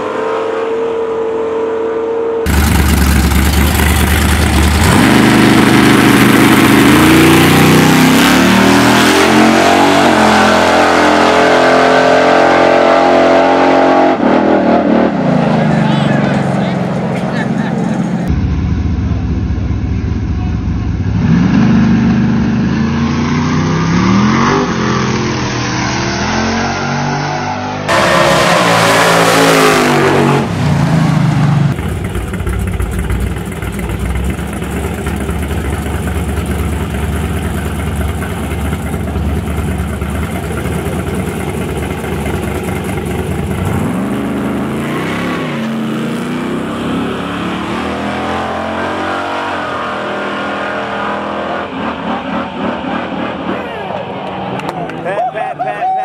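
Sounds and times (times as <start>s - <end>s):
race car engines revving: 0.0s - 18.4s, 19.0s - 56.0s.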